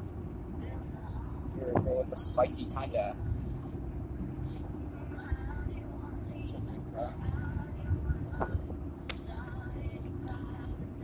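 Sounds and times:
car cabin road rumble: 0.0s - 11.0s
faint voices: 4.3s - 11.0s.

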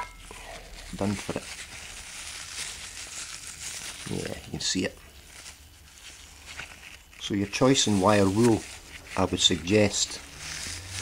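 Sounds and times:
gloved hands rustling wire wool: 0.0s - 11.0s
low steady hum: 0.0s - 11.0s.

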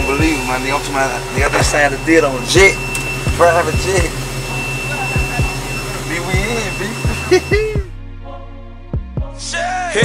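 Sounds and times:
jet cabin hum and rush: 0.0s - 7.9s
high steady whine: 0.0s - 8.0s.

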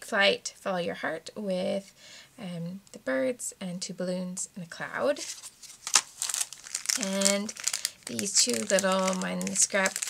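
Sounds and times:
plastic packaging crinkling: 5.2s - 10.0s.

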